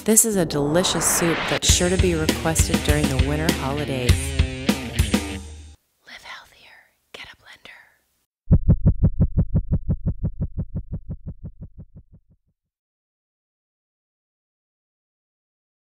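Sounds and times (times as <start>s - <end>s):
rapid low pulses: 0.0s - 2.5s, 8.5s - 12.3s
background music: 0.0s - 5.8s
person whispering: 6.0s - 8.0s.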